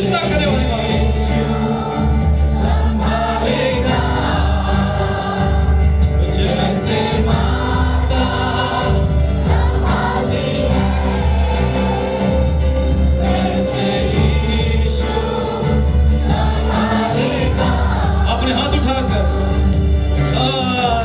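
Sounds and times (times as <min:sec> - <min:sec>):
amplified band music: 0:00.0 - 0:21.0
worship singers singing: 0:00.0 - 0:21.0.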